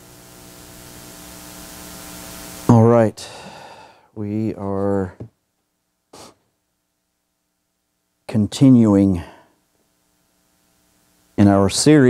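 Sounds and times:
electrical mains hum with hiss: 0.0s - 12.0s
man talking: 2.7s - 3.4s, 4.2s - 5.3s, 8.3s - 9.4s, 11.4s - 12.0s.

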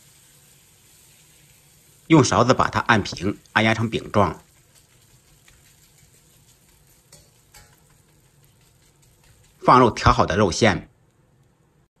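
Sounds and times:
potato frying in oil: 0.0s - 12.0s.

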